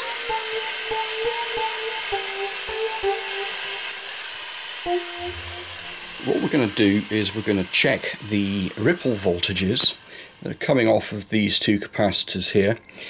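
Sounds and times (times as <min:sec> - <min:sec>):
cordless vacuum high-pitched whine: 0:00.0 - 0:11.5.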